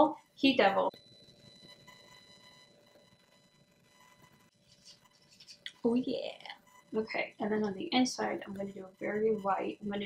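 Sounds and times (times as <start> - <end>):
faint electrical buzz: 0.0 - 10.0.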